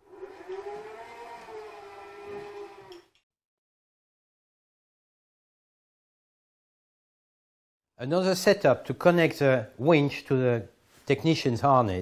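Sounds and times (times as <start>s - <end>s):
electric motor whining: 0.0s - 3.1s.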